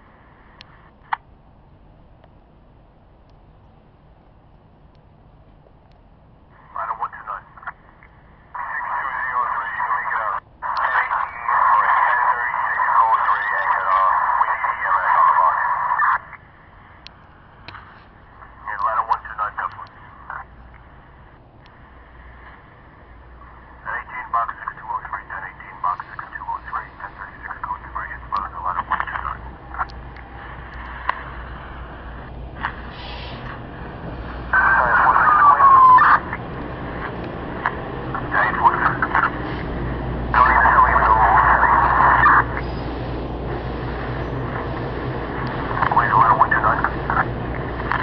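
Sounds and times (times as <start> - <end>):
low radio hiss: 0.0 - 48.0
faint clicks: 4.5 - 6.1, 17.0 - 20.0
tinny radio voice: 6.6 - 7.8, 8.5 - 16.4, 18.4 - 20.6, 23.4 - 33.0, 34.5 - 36.5, 38.1 - 39.6, 40.3 - 42.7, 45.6 - 48.0
train rumbling: 25.6 - 48.0.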